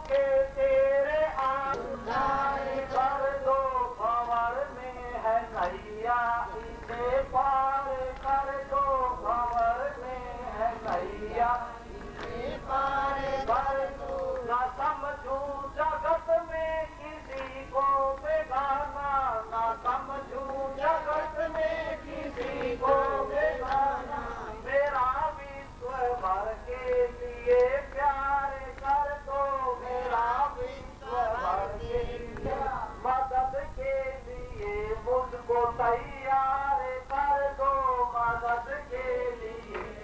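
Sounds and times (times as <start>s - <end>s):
high voice devotional singing: 0.0s - 40.0s.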